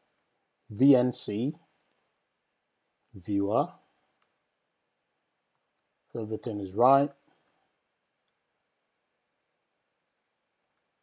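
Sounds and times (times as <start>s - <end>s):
person speaking: 3.1s - 3.9s, 6.1s - 7.4s.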